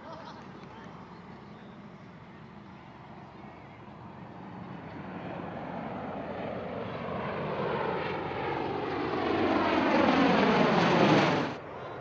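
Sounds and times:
distant aircraft rotor drone: 0:00.0 - 0:12.0.

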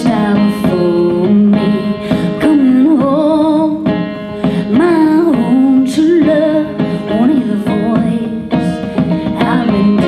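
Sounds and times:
drums: 0:00.0 - 0:10.0
guitar: 0:00.0 - 0:10.0
plucked banjo: 0:00.0 - 0:10.0
woman singing: 0:00.0 - 0:10.0.

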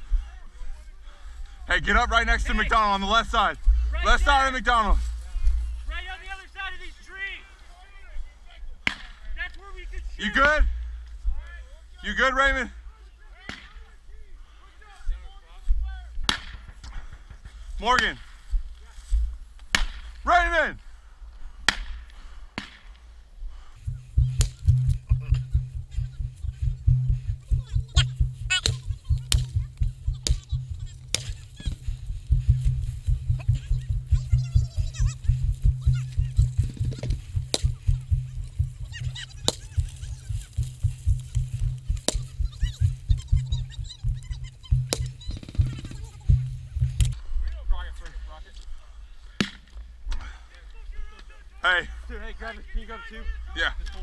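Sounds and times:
sharp cracks: 0:16.2 - 0:18.4
camera thumping and rubbing: 0:24.2 - 0:47.2.

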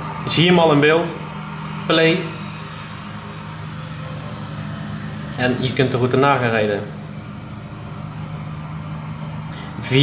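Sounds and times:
low background hum: 0:00.0 - 0:10.0.

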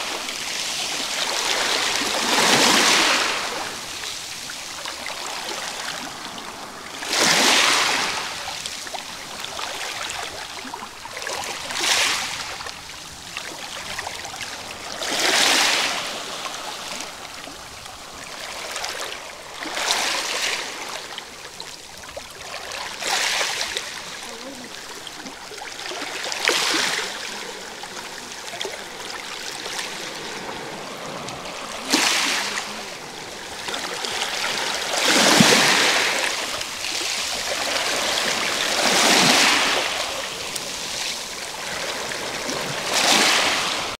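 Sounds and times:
waves washing over pebbles: 0:00.0 - 0:43.9.

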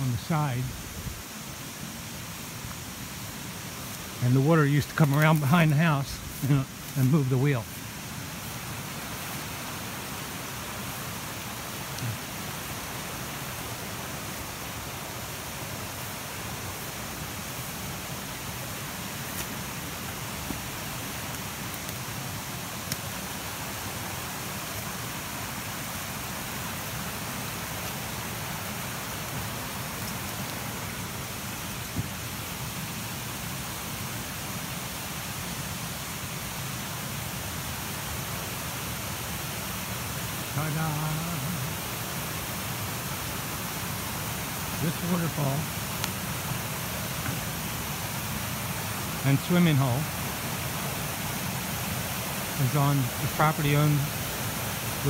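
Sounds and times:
waterfall and rushing creek: 0:00.0 - 0:55.0.

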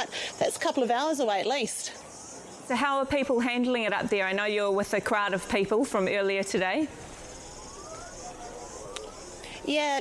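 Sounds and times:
high-pitched insect trill: 0:00.0 - 0:03.7, 0:07.0 - 0:10.0
outdoor background noise: 0:00.0 - 0:10.0
distant warning siren sweeping upward: 0:06.0 - 0:10.0.

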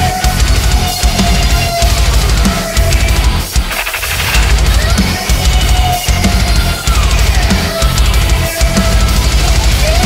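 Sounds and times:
heavy downtuned guitars: 0:00.0 - 0:10.0
industrial metal music: 0:00.0 - 0:10.0
pounding bass drums: 0:00.0 - 0:10.0
noisy effect: 0:03.0 - 0:05.9.

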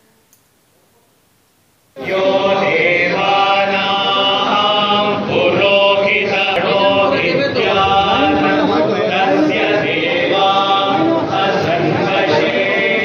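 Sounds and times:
monks chanting in unison: 0:02.0 - 0:13.0.

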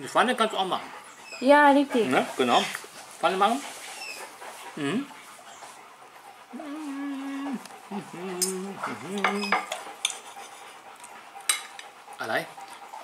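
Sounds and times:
person humming: 0:06.5 - 0:09.7
cutlery clinking on a plate: 0:09.2 - 0:10.2, 0:11.5 - 0:11.9.

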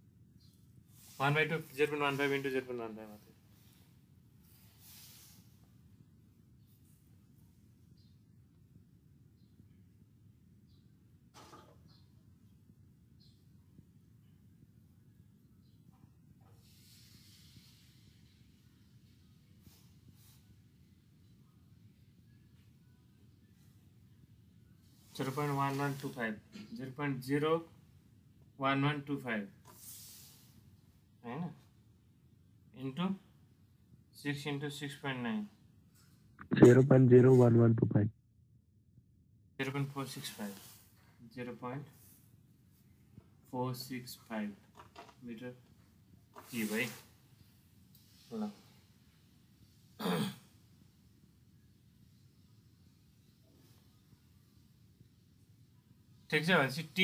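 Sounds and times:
slight hiss: 0:00.9 - 0:05.8, 0:16.6 - 0:20.8, 0:24.8 - 0:26.8, 0:29.6 - 0:30.7, 0:39.6 - 0:41.0, 0:46.3 - 0:47.2
low steady hum: 0:36.4 - 0:38.1
man saying a syllable: 0:36.5 - 0:38.1.

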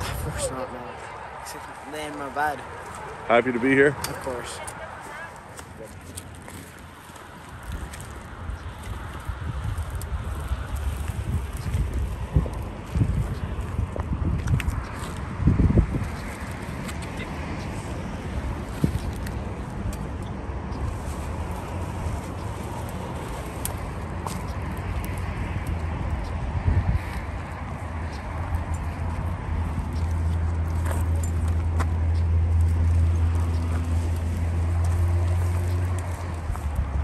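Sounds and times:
highway traffic: 0:00.0 - 0:37.0.

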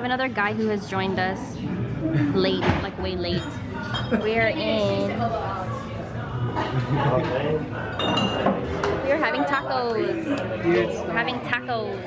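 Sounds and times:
glass tableware clinking: 0:03.3 - 0:04.3, 0:07.9 - 0:08.9
voices and laughter: 0:03.7 - 0:04.7, 0:06.3 - 0:07.7.

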